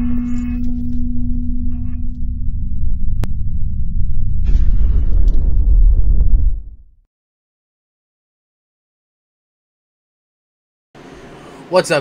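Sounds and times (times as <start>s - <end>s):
deep rumble: 0.0s - 7.0s
low hum tone: 0.0s - 7.0s.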